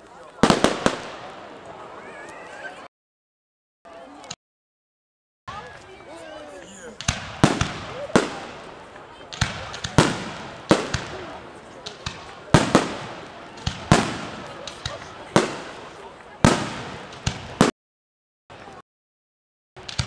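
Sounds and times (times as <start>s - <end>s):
fireworks bangs: 0.3s - 2.2s, 7.0s - 17.7s, 19.8s - 20.0s.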